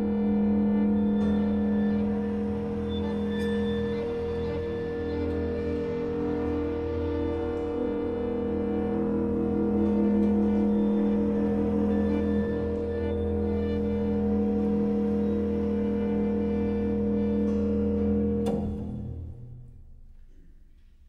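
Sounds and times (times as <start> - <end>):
held ensemble tones: 0.0 - 19.4
low drone: 0.0 - 19.9.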